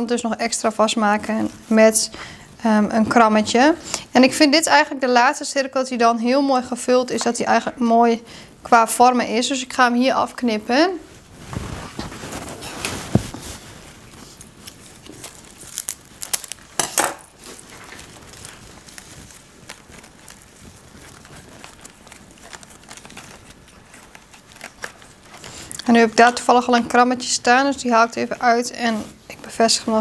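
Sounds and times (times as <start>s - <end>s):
rustling straw and greenery: 11.4s - 26.1s
scissors cutting: 21.2s - 26.0s.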